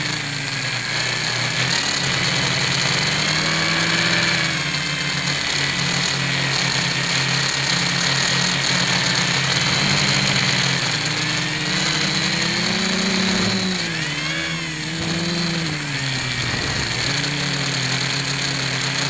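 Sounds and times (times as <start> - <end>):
drone propellers whining: 0.0 - 19.0.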